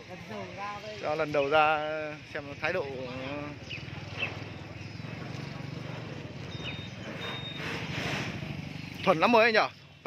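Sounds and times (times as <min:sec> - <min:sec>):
songbirds chirping: 0:00.0 - 0:10.0
low engine hum: 0:03.4 - 0:09.2.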